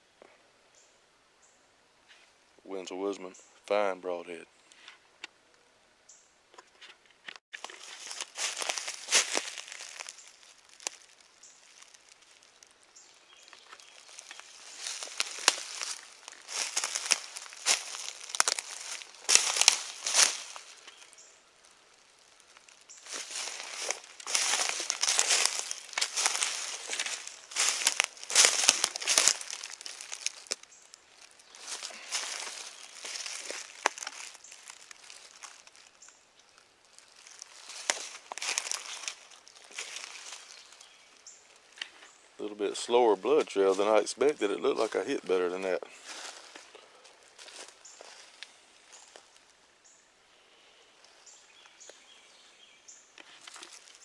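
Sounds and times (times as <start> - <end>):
footsteps crunching dry leaves: 7.5 - 42.2, 42.8 - 49.6, 53.2 - 54.0.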